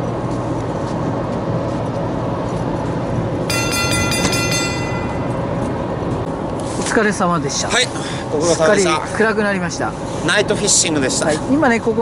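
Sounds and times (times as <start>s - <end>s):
high multi-tone ringing: 3.5s - 5.9s
ship engines droning: 3.5s - 6.6s.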